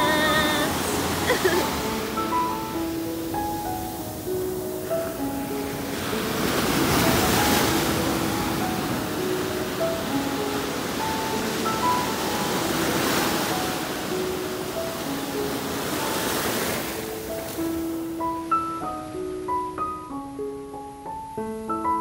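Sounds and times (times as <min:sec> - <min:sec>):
surf washing over sand: 0:00.0 - 0:19.6
background piano music: 0:00.0 - 0:22.0.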